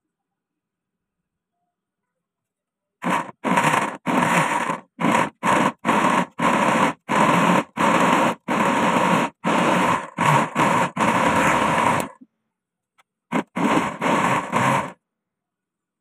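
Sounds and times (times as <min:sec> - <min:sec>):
blender running in bursts: 0:03.0 - 0:12.2, 0:13.3 - 0:15.0.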